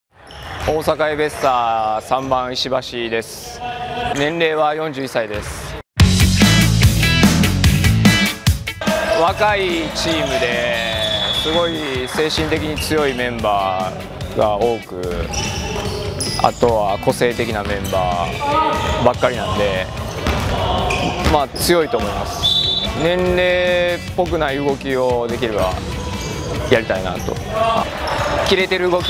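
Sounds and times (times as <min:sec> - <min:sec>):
background music: 0:06.0 - 0:29.0
man talking: 0:08.8 - 0:15.4, 0:16.3 - 0:20.0, 0:20.6 - 0:25.8, 0:26.6 - 0:29.0.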